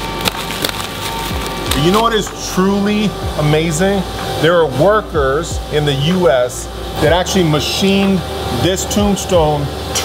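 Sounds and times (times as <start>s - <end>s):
plastic wrap crackling and tearing: 0.0s - 2.4s
plastic wrap snapping: 0.0s - 2.4s.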